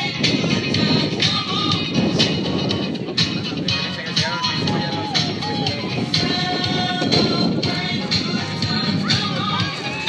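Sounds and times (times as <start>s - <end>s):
music with steady beat: 0.0s - 10.0s.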